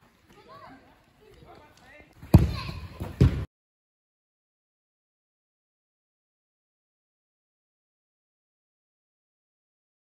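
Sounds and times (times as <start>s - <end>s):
football being kicked: 2.2s - 3.5s.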